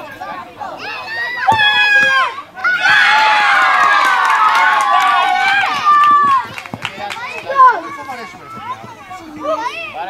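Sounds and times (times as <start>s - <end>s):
children shouting and cheering: 0.8s - 10.0s.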